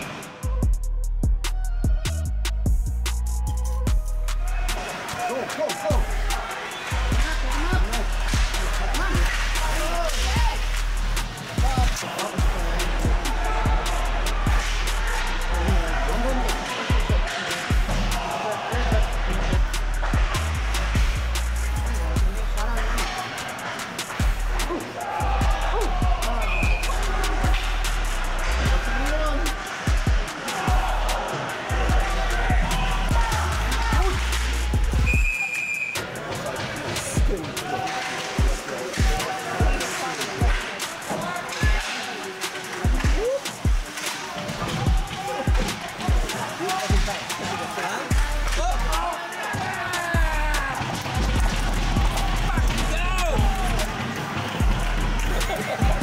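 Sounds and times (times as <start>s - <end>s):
music: 0.0s - 56.0s
voices: 4.3s - 56.0s
hockey sticks and puck clacking: 4.4s - 13.2s, 13.8s - 21.4s, 22.6s - 25.2s, 25.8s - 56.0s.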